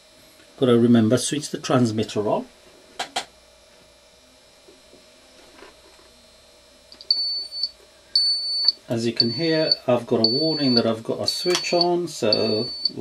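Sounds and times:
high warning beeps: 7.0 - 13.0
transmitter switch click: 11.4 - 11.8.

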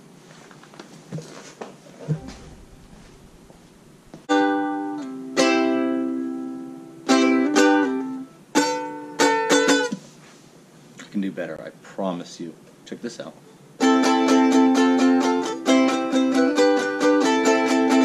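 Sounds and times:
ukulele strumming: 2.1 - 10.1, 13.8 - 18.0.

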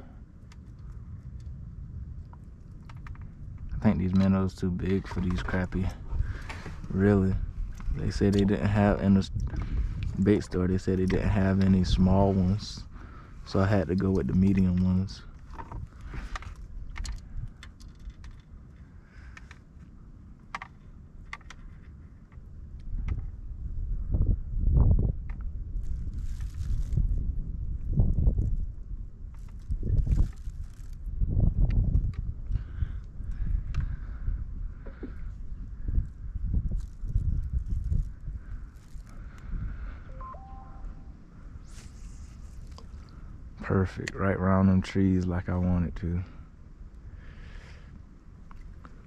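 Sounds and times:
low rumbles: 0.0 - 49.0
fishing tackle clicking and rustling: 2.2 - 7.0, 9.3 - 23.2, 25.3 - 27.2, 28.0 - 33.9, 34.8 - 40.0, 41.6 - 43.2.

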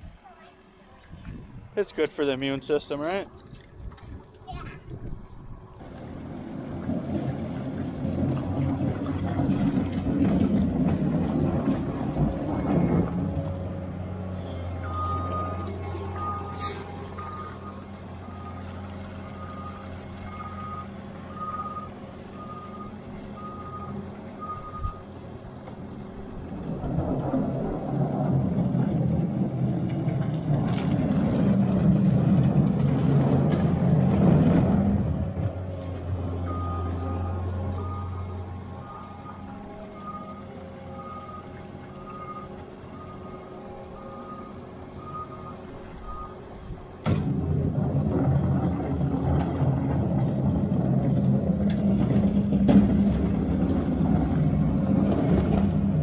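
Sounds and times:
diesel engine running: 1.9 - 56.0
backup alarm beeping: 14.8 - 25.0, 36.4 - 46.4.

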